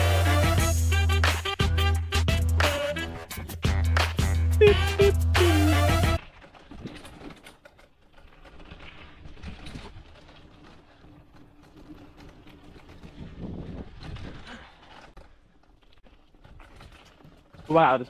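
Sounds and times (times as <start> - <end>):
music: 0.0 - 6.2
bike rattles and clicks: 0.0 - 18.0
bike tyres on dirt: 0.0 - 18.0.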